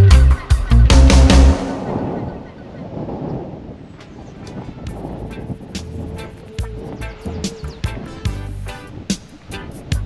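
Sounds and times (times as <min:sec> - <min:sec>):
background music: 0:00.0 - 0:02.4, 0:04.9 - 0:10.0
wind rumbling on microphone: 0:00.8 - 0:10.0.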